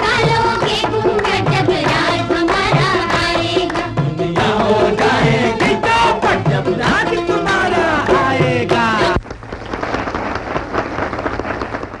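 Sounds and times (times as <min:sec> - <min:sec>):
audience applauding: 0:08.7 - 0:12.0.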